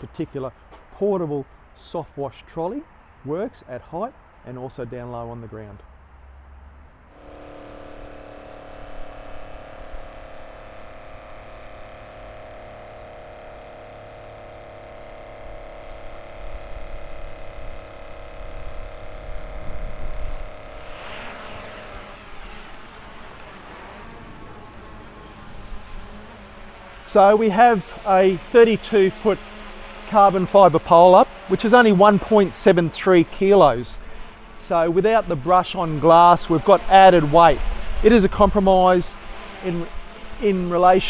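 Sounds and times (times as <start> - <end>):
electric spray pump whirring: 7.1 - 41.0.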